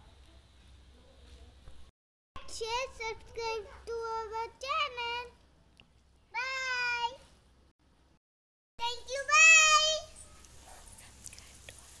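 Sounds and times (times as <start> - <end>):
background hiss: 8.8 - 12.0
child calling out: 9.2 - 10.1.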